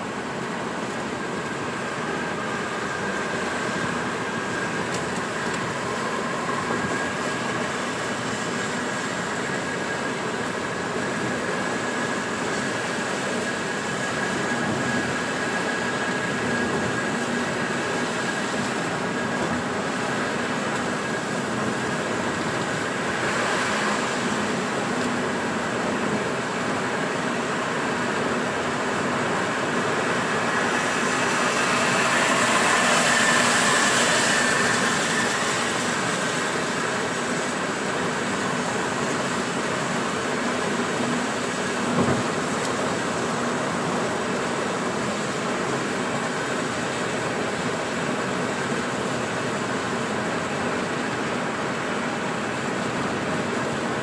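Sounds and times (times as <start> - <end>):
rain on car: 15.3 - 54.0.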